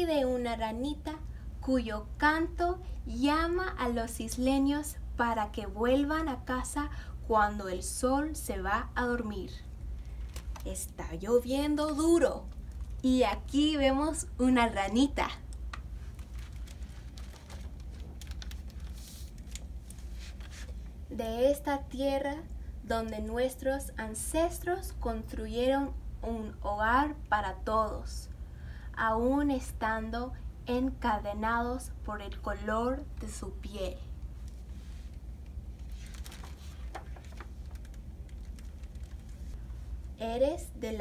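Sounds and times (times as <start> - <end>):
low room hum: 0.0 - 41.0
book pages turning: 15.7 - 20.8, 35.8 - 39.6
paper clicks and rustles: 16.0 - 20.8, 35.8 - 39.6.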